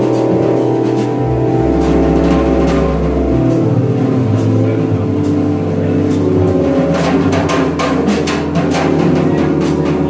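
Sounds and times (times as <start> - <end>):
cymbal and drum strokes: 0.0 - 10.0
keyboard chords: 0.0 - 10.0
low bass line: 0.0 - 10.0.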